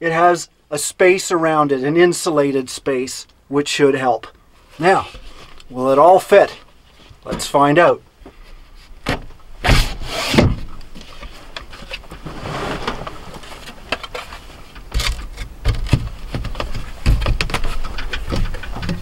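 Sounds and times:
scraping and rustling: 4.6s - 5.7s, 9.7s - 19.0s.

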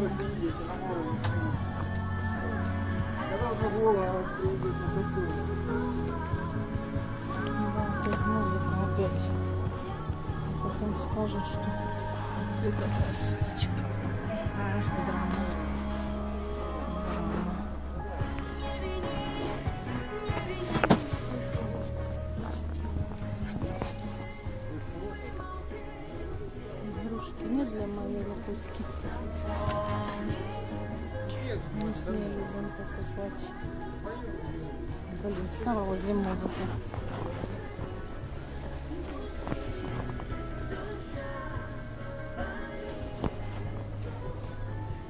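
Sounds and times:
background music: 0.0s - 45.0s
low indistinct voices: 0.0s - 45.0s.

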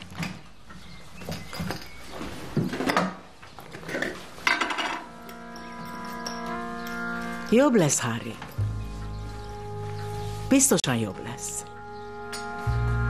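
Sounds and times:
crockery and utensils clinking: 3.7s - 7.1s
background music with held notes: 4.8s - 13.0s.

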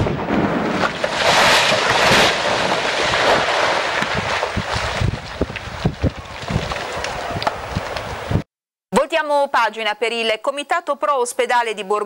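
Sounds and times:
rockfall rush of falling rock: 0.0s - 8.4s
stones tumbling down slope: 0.6s - 8.4s.

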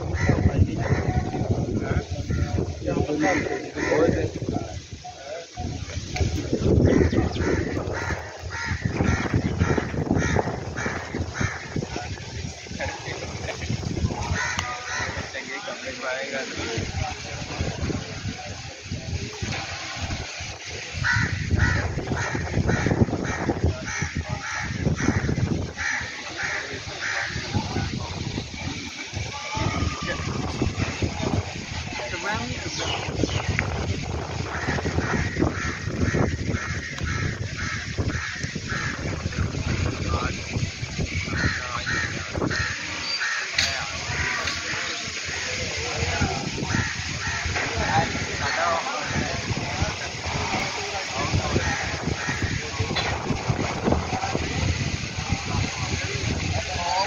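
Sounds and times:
gusting wind buffeting microphone: 0.0s - 57.0s
crows cawing: 6.8s - 11.9s, 14.3s - 15.4s, 21.0s - 27.5s, 34.4s - 39.4s, 41.3s - 45.5s, 46.6s - 49.4s, 51.6s - 52.7s
bird calling: 41.3s - 45.6s.

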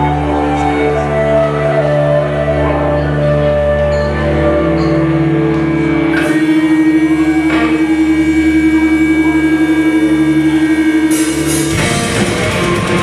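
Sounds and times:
droning electric guitar chord: 4.6s - 13.0s.

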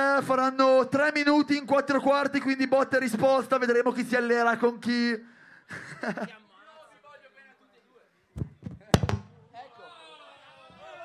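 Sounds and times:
microphone hitting the ground: 8.4s - 9.4s.

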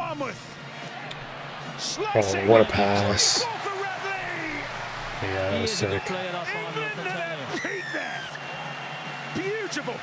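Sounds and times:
commentator speaking: 1.8s - 4.6s.

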